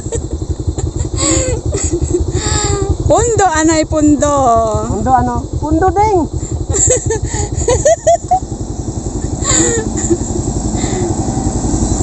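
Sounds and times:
motorcycle engine idling: 0.0 - 12.0
truck engine approaching: 0.0 - 12.0.

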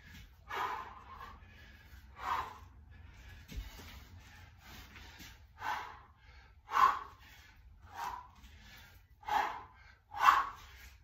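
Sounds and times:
man breathing hard: 0.0 - 11.0.

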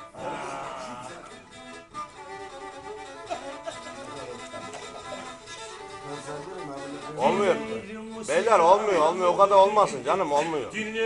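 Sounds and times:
bowed fiddle melody: 0.0 - 11.0.

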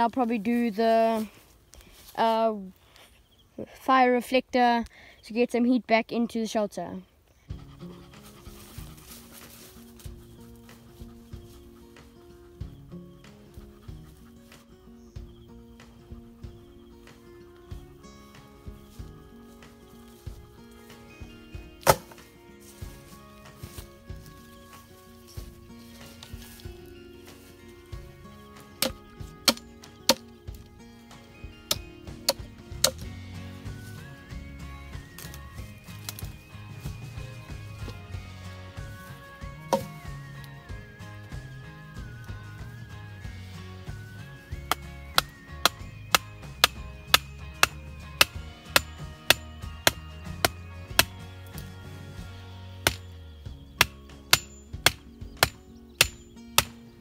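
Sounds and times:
background music with bass line: 7.5 - 57.0
hatchet chopping wooden pole: 21.8 - 22.2, 28.8 - 30.6, 31.7 - 33.1, 36.0 - 36.4, 39.6 - 40.0, 44.5 - 51.7, 52.8 - 53.1, 53.8 - 56.8.

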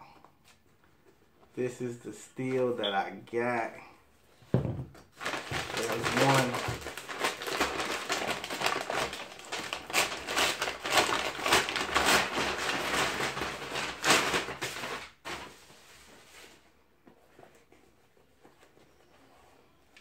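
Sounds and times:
plastic bag crinkling: 5.1 - 15.6.

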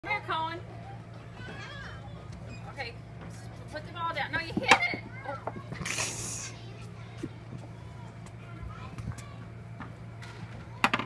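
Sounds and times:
steady low hum: 0.0 - 11.0
children chattering: 0.6 - 2.6, 3.8 - 11.0.

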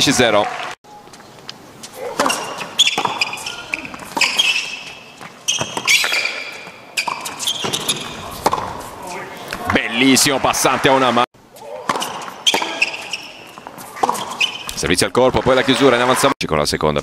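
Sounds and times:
shoes squeaking on court: 1.0 - 9.7, 11.6 - 14.8
rackets striking tennis ball: 1.8 - 10.1, 11.6 - 14.8.

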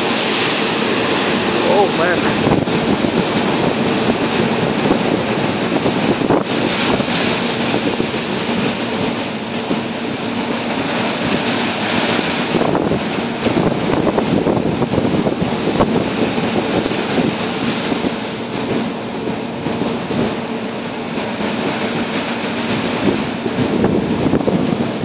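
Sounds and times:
ship low hum: 0.0 - 25.0
storm waves breaking over deck: 0.0 - 25.0
wind buffeting microphone: 0.0 - 25.0.

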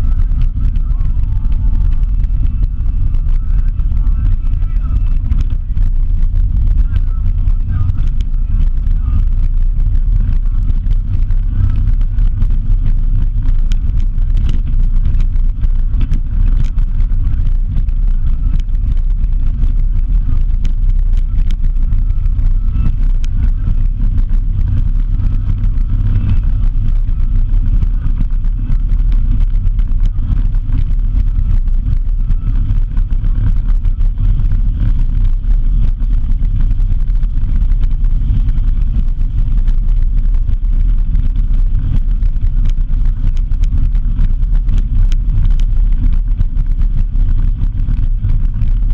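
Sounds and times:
grit ticking: 0.0 - 48.9
vehicle rumble on dirt road: 0.0 - 48.9
wind buffeting microphone: 0.0 - 48.9.

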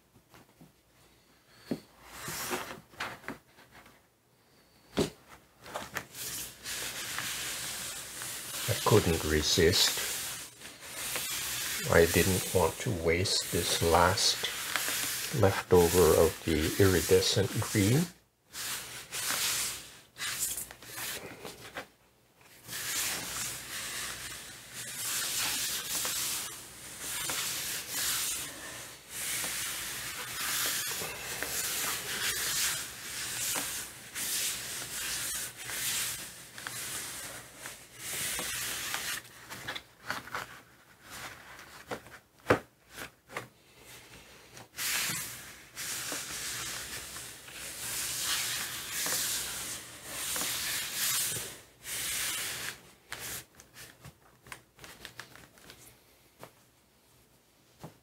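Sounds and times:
hands rubbing paper: 5.7 - 21.8, 22.6 - 42.2, 44.7 - 55.9.

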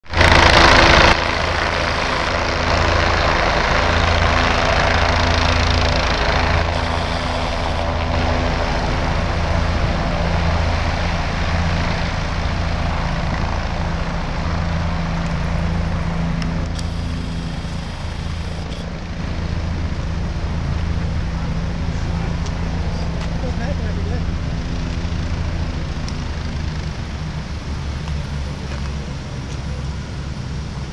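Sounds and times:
helicopter rotor and engine: 0.0 - 30.9
loud rush of noise: 0.0 - 30.9.

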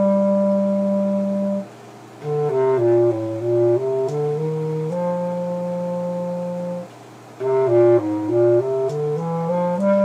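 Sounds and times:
wind instrument long low note: 0.0 - 10.0.

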